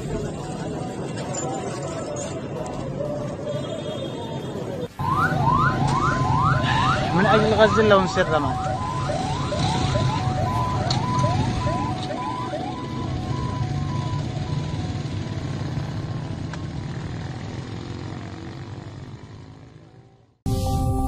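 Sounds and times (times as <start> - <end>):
emergency vehicle siren: 0.0 - 18.6.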